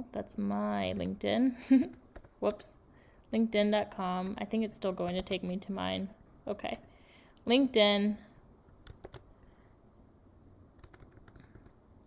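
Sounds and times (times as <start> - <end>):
keyboard typing: 1.8 - 2.6, 8.7 - 9.3, 10.8 - 11.8.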